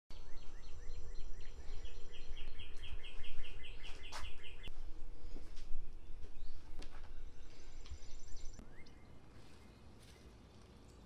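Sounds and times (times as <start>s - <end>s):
songbird singing repeated notes: 0.1s - 4.7s, 5.7s - 11.0s.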